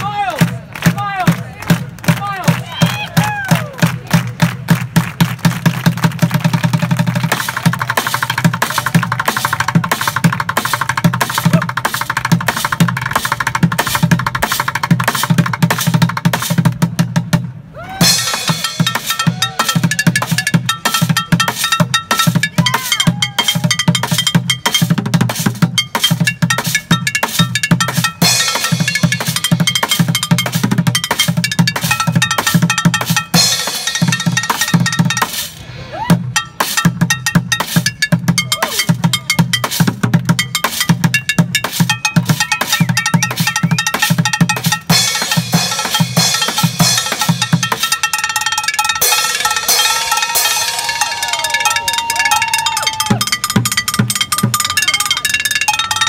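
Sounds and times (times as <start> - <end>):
ringing metallic tones: 18.2 - 35.4, 36.3 - 56.0.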